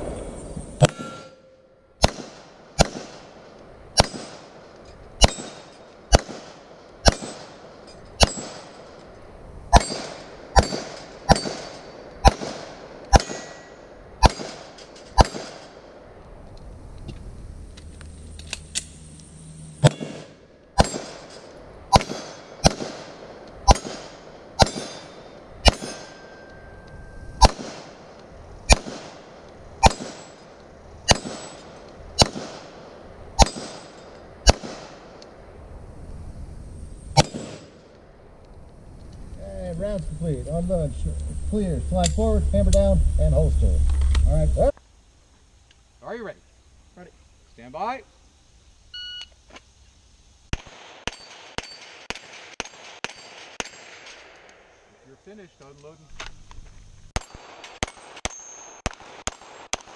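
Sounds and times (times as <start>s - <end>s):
handgun shots: 4.0s - 4.4s, 5.2s - 7.5s, 9.7s - 13.6s, 21.9s - 23.1s, 23.7s - 26.2s, 29.8s - 30.3s.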